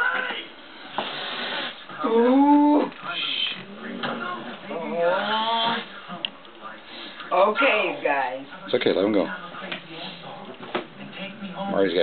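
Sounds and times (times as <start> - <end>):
cat hissing: 1.0 - 3.7, 5.0 - 5.9.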